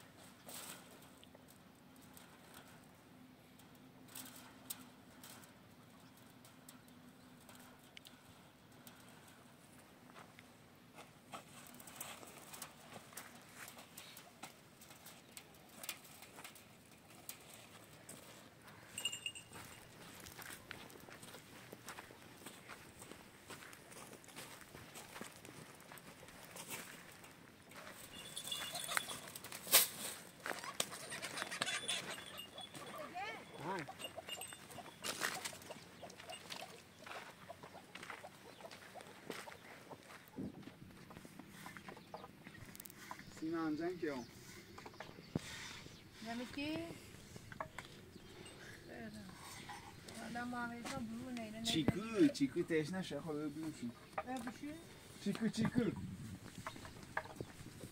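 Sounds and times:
animal calls: 28.1s - 29.4s, 30.4s - 40.1s.

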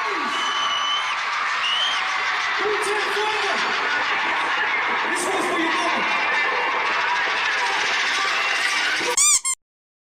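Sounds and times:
audience cheering and screaming: 0.0s - 9.2s.

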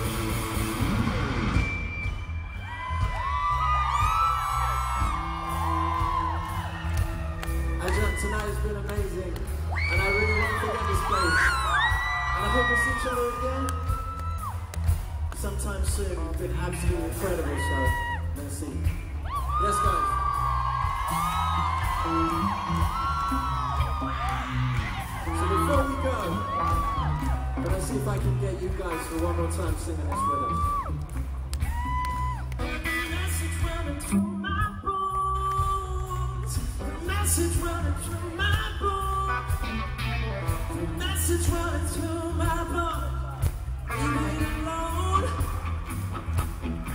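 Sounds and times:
pop band bass and drum groove: 0.0s - 46.9s
whoops: 2.6s - 8.6s, 9.7s - 14.8s, 17.4s - 18.3s, 19.2s - 27.7s, 30.0s - 32.6s.

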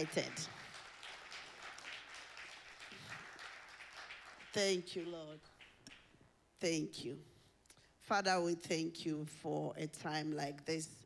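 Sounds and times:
congregation applauding: 0.0s - 6.2s.

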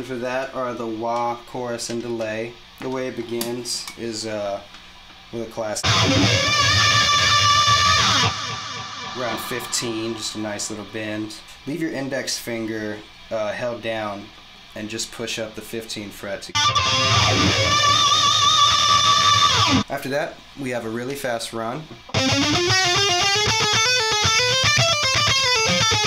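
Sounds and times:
electric guitar sustained bent note: 5.8s - 11.6s, 16.6s - 19.8s, 22.1s - 26.0s.

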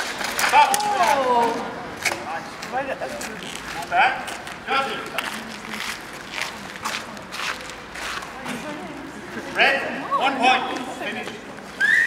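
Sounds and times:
footsteps on cobblestones: 0.0s - 9.6s
faint voices: 0.4s - 12.0s.

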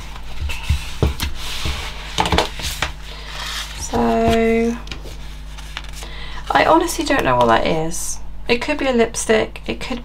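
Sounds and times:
paper rustle: 0.0s - 6.1s.

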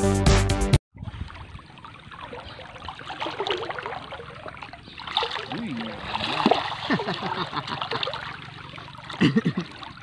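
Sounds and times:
river water sloshing and splashing: 1.0s - 10.0s.

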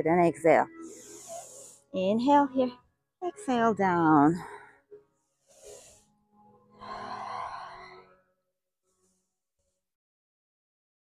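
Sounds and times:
woman breathing: 0.7s - 1.9s, 4.4s - 8.2s.

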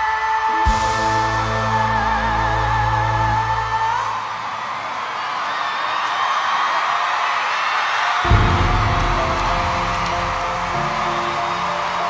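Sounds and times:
audience cheering and applauding: 0.0s - 12.0s.

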